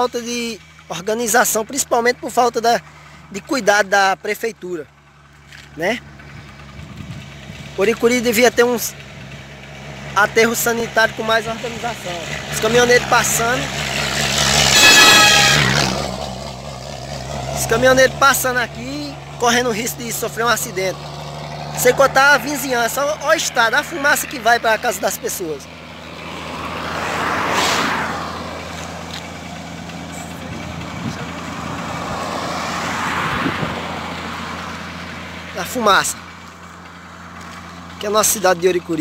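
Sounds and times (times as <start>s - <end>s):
high engine whine: 0.0s - 39.0s
truck passing on highway: 0.0s - 39.0s.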